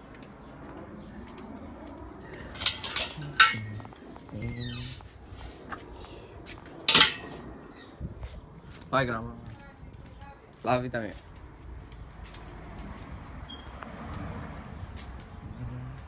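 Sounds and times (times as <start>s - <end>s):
sharp clinks and knocks: 2.6s - 4.8s, 6.9s - 7.4s.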